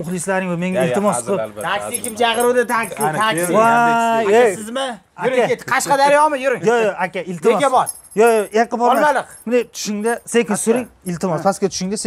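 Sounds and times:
faint metallic jingling: 0:00.0 - 0:04.0, 0:07.1 - 0:11.2
men talking animatedly: 0:00.0 - 0:12.0.

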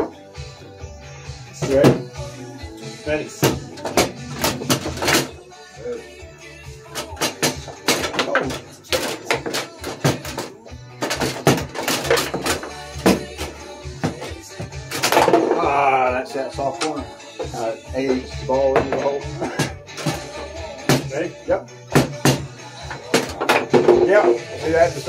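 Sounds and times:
background music: 0:00.0 - 0:25.0
foosball clacks: 0:03.4 - 0:05.3, 0:06.9 - 0:15.6, 0:22.0 - 0:24.1.

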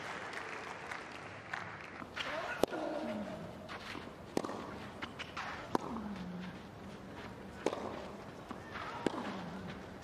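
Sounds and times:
racket hitting tennis ball: 0:02.0 - 0:03.2, 0:03.8 - 0:06.3, 0:07.6 - 0:10.0
footsteps on court: 0:02.0 - 0:10.0.

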